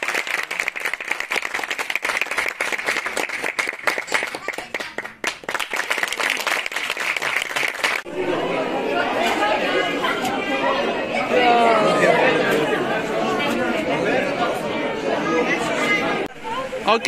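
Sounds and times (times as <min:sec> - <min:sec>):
crowd chatter in a large hall: 0:08.0 - 0:17.0.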